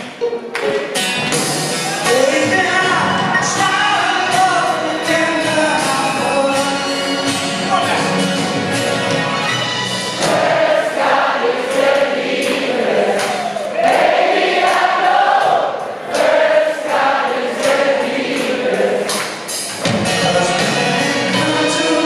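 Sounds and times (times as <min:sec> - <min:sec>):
choir singing live: 0:09.9 - 0:22.0.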